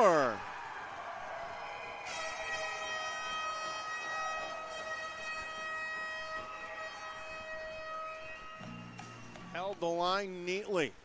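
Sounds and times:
goal horn long steady tone: 1.8s - 9.8s.

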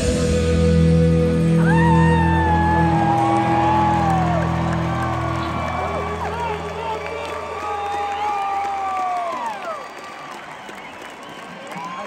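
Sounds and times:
long whoop falling in pitch: 1.5s - 6.7s
crowd cheering and whistling: 1.5s - 12.0s.

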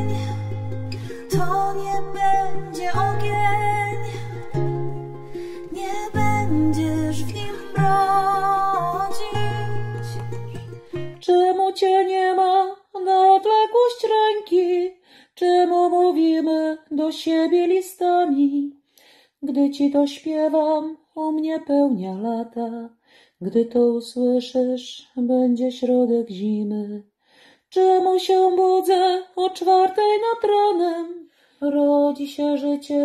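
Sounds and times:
acoustic guitar: 0.0s - 12.5s
ukulele: 0.0s - 14.9s
woman singing: 0.0s - 18.8s, 19.4s - 27.1s, 27.7s - 33.0s.

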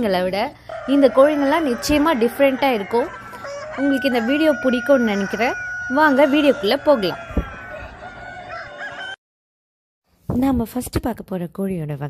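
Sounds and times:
roosters crowing and clucking: 0.6s - 9.2s.

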